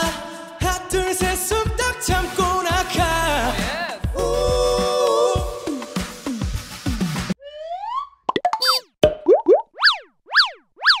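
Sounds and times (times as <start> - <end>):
pop song: 0.0 - 7.0.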